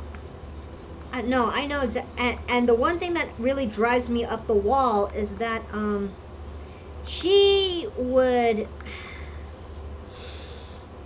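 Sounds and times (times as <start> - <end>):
steady low hum: 0.0 - 11.0
person breathing into microphone: 10.1 - 10.9.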